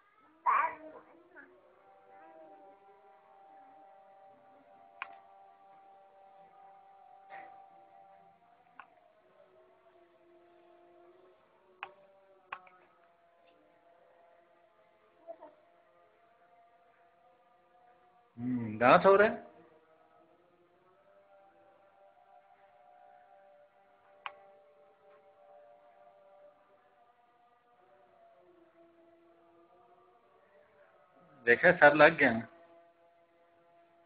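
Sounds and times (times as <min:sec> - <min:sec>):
faint steady hum: 0:00.0 - 0:34.0
faint steady tones: 0:00.0 - 0:34.0.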